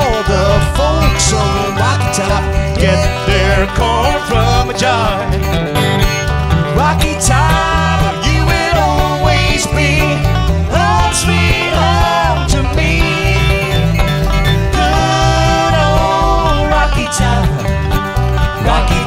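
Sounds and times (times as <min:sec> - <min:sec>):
banjo: 0:00.0 - 0:19.0
strummed acoustic guitars: 0:00.0 - 0:19.0
upright bass: 0:00.0 - 0:19.0.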